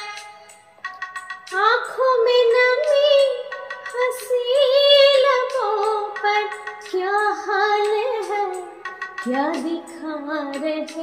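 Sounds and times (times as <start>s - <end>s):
karaoke backing track: 0.0s - 11.0s
woman singing: 1.5s - 11.0s.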